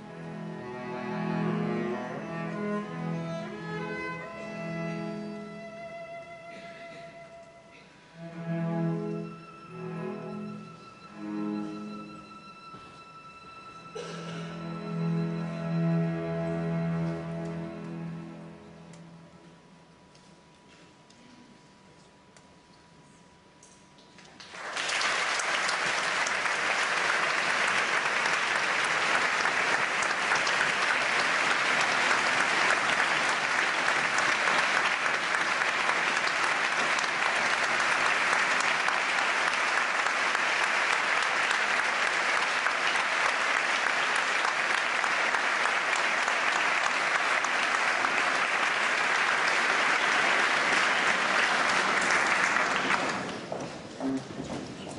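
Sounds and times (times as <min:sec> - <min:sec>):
audience applauding: 0:24.3 - 0:54.9.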